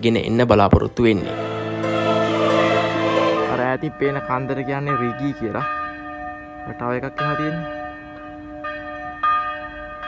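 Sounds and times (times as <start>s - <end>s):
church bells ringing: 0.9s - 10.0s.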